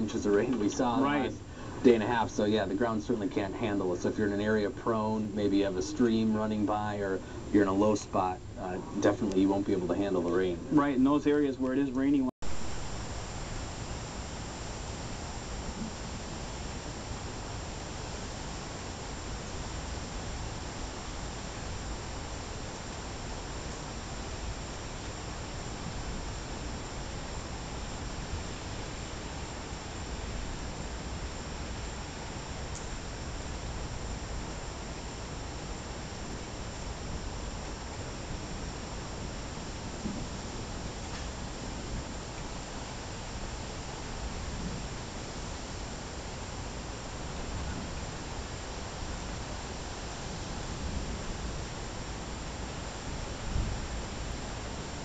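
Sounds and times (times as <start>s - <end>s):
outdoor night ambience hiss: 0.0s - 55.0s.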